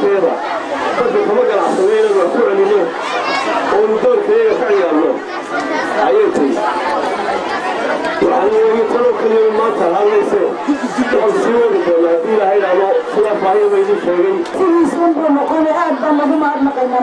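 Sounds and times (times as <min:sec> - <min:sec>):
man speaking into a microphone: 0:00.0 - 0:00.4, 0:01.0 - 0:03.0, 0:03.7 - 0:05.2, 0:06.0 - 0:06.8, 0:08.2 - 0:15.8.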